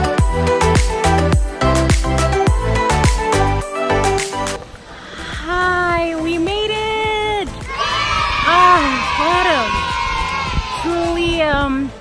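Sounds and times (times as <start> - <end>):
women cheering: 7.5 - 11.4.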